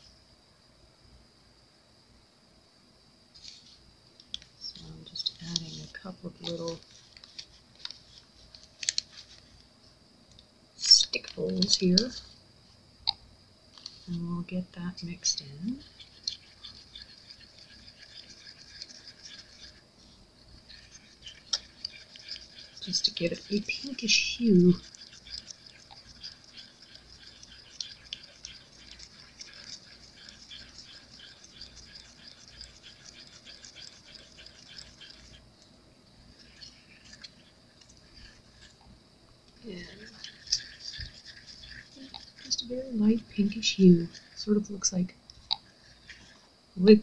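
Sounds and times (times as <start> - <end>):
stir stick scraping cup: 4.7 - 9.4, 10.8 - 12.3, 15.2 - 35.6, 36.2 - 38.9, 39.6 - 46.4.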